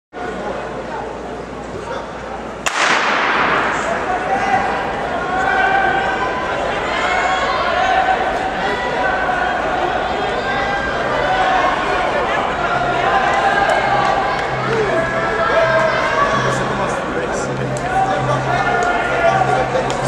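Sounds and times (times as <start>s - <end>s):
starting gun crack echoing: 2.6s - 4.8s
spectators shouting and cheering: 2.7s - 20.0s.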